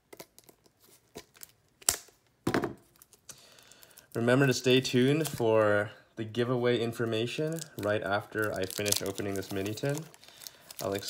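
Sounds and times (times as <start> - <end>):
plastic wrap crinkling and tearing: 0.1 - 2.2, 2.8 - 5.6, 7.0 - 11.0.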